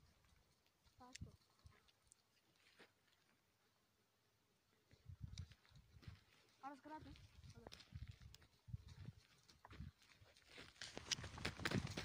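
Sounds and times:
hoof steps on dry ground: 0.0 - 3.4, 4.8 - 12.0.

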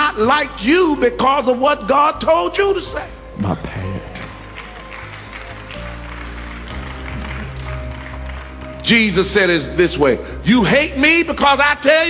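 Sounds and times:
soft music of held chords: 0.0 - 12.0.

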